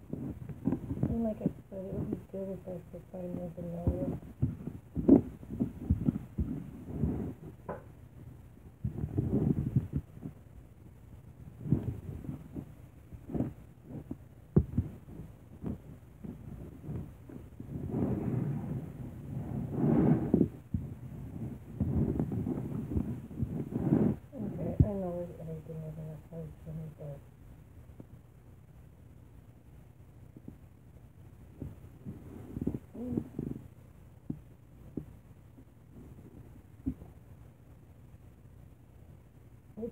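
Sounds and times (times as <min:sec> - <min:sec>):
person muttering: 0:32.9 - 0:33.4.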